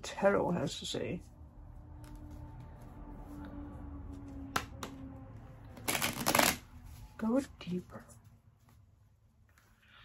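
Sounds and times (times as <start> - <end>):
rapid card shuffling: 5.8 - 7.0.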